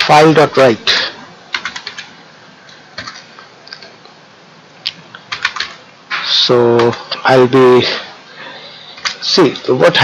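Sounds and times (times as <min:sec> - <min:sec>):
keyboard typing: 0:01.5 - 0:02.2, 0:03.0 - 0:04.0, 0:05.2 - 0:05.8, 0:08.9 - 0:09.8.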